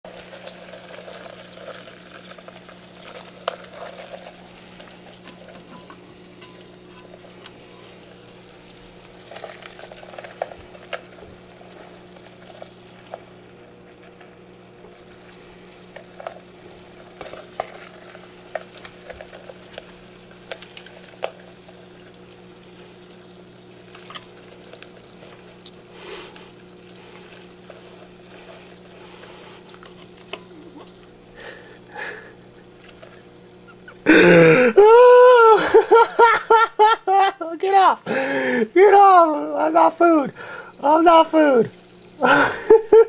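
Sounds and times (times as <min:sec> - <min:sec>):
low electrical hum: 0:00.0 - 0:43.0
light clicks and crackles: 0:00.3 - 0:31.7.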